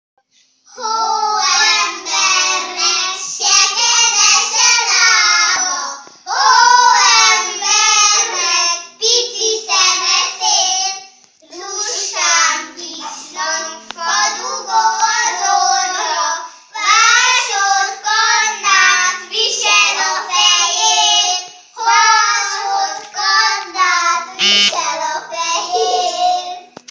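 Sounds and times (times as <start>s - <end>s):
children singing: 11.5s - 23.6s, 24.4s - 26.7s.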